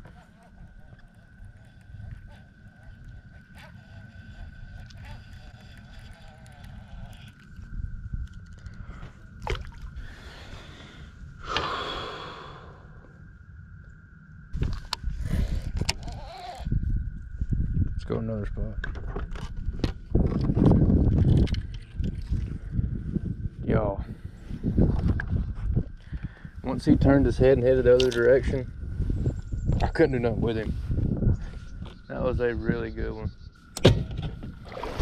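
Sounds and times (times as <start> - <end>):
faint high whine: 0.0 - 19.9, 21.5 - 35.0
wind rumble on microphone: 0.0 - 35.0
fishing rod and reel clicks: 3.0 - 8.8, 21.1 - 22.4, 27.9 - 28.4
heavy exhaled breath: 10.0 - 13.0.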